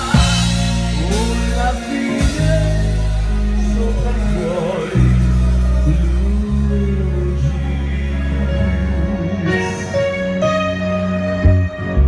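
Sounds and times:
keyboard sustained chords: 0:00.0 - 0:12.0.

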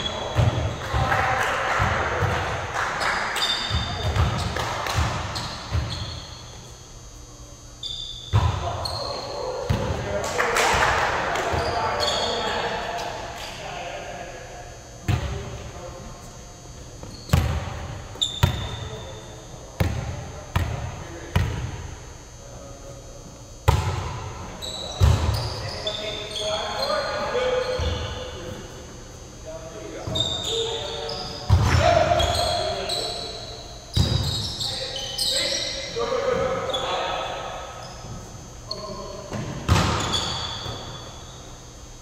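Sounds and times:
volleyball smacks echoing in hall: 0:00.0 - 0:06.1, 0:08.3 - 0:13.7, 0:15.0 - 0:15.9, 0:17.0 - 0:19.0, 0:19.7 - 0:22.0, 0:23.6 - 0:25.6, 0:31.4 - 0:32.8, 0:33.9 - 0:34.4, 0:39.2 - 0:41.2.

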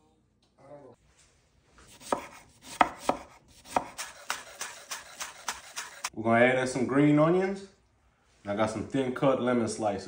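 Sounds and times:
knife chopping on wooden board: 0:01.9 - 0:06.1
knife slicing on wooden board: 0:01.9 - 0:06.1.

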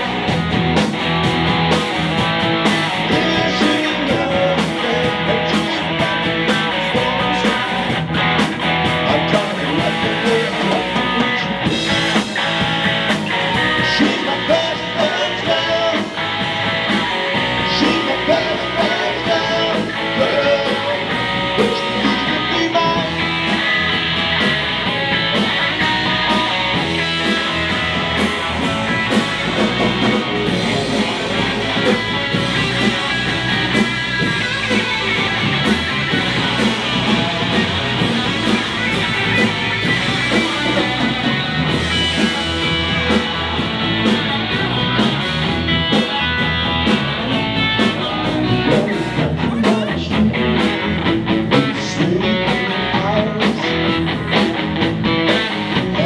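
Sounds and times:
bass: 0:00.0 - 0:56.0
drum kit beat: 0:00.0 - 0:56.0
guitar: 0:00.0 - 0:56.0.

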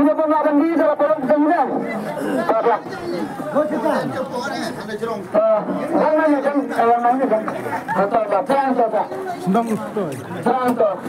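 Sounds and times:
crowd of people talking: 0:00.0 - 0:11.0.

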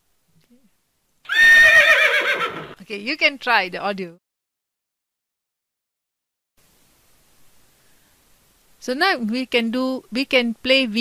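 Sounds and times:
horse whinny: 0:01.3 - 0:02.8.

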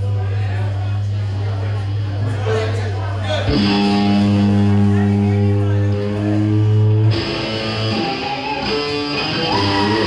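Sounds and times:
live rock band electric guitars: 0:03.4 - 0:10.0.

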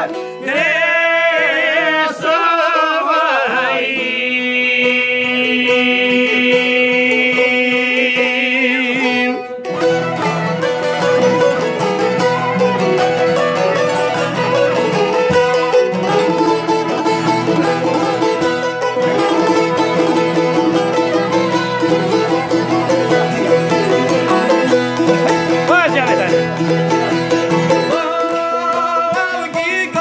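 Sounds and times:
two-stringed lute strummed: 0:00.0 - 0:30.0
bowed violin melody: 0:09.7 - 0:29.0.

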